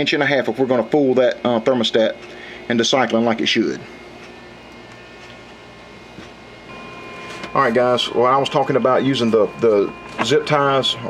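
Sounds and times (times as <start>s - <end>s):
small fan whirring: 0.0s - 11.0s.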